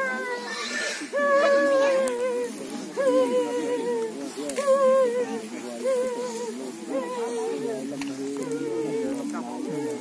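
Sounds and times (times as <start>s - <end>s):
other voices: 0.0s - 10.0s.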